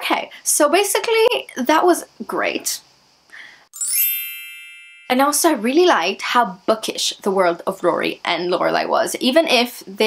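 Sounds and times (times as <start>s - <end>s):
bell-like ding chime: 3.8s - 5.3s.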